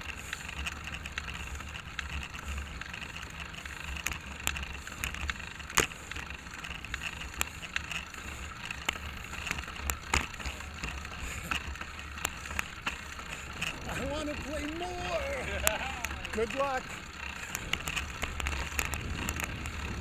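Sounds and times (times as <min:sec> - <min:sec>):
bicycle clicks and rattles: 0:00.0 - 0:20.0
rumble of road and wind: 0:00.0 - 0:20.0.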